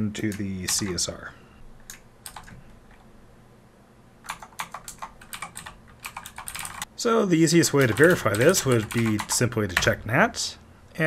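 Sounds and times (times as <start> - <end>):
computer keyboard typing: 0.3 - 1.0, 1.8 - 3.0, 4.2 - 6.9, 7.6 - 10.0.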